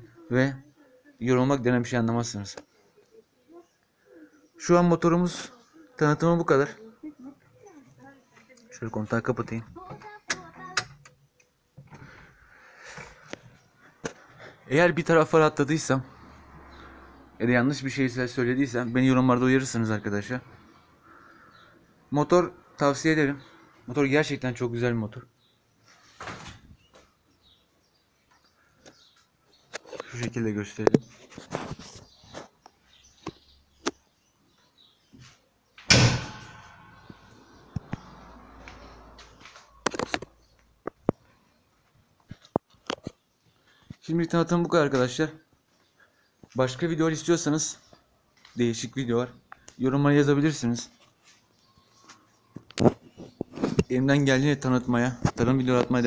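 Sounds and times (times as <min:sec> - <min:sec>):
tractor cab door slamming: 0:35.9 - 0:37.2.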